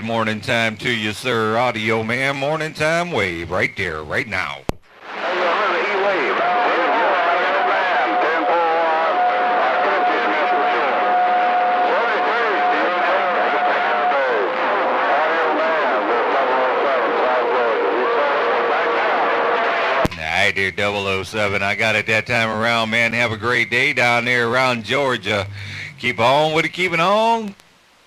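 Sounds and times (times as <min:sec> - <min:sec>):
garbled overlapping radio voices: 0:00.0 - 0:27.6
radio static: 0:04.8 - 0:27.6
warbling radio whistles: 0:20.8 - 0:27.2.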